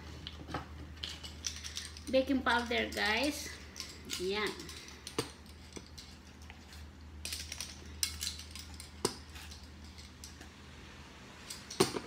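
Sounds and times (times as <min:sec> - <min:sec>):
low steady hum: 0:00.0 - 0:12.0
plastic measuring spoons clattering: 0:01.0 - 0:10.4.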